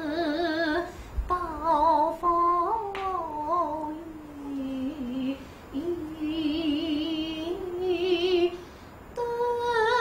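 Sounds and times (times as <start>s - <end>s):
woman singing opera with vibrato: 0.0s - 8.6s, 9.2s - 10.0s.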